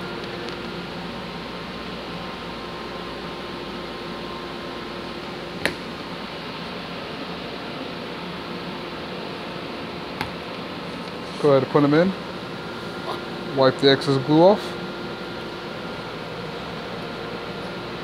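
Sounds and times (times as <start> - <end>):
mechanical room hum: 0.0 - 18.0.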